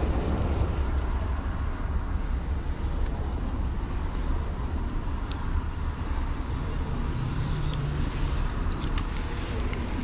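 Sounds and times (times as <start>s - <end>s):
car engine rumble from inside: 0.0s - 10.0s.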